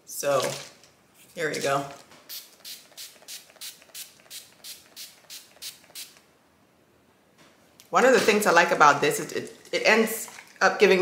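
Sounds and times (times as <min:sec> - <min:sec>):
spray bottle misting: 0:02.3 - 0:06.2.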